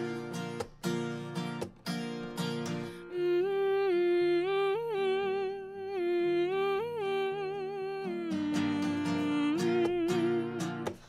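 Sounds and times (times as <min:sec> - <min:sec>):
woman humming a melody: 0:03.1 - 0:11.0.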